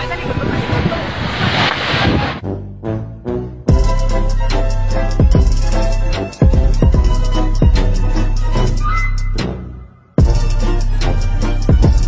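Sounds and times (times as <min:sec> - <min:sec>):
waves crashing over a seawall: 0:00.0 - 0:02.4
music: 0:02.4 - 0:12.0.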